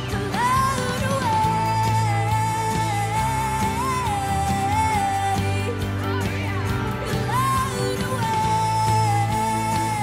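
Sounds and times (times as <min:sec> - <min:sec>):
backing track music: 0:00.0 - 0:10.0
young woman singing: 0:00.0 - 0:10.0.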